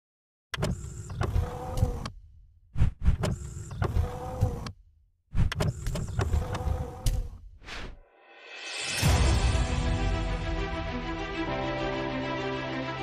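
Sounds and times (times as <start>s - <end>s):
sharp mechanical clicks: 0.5s - 2.2s, 2.8s - 4.8s, 5.4s - 7.4s.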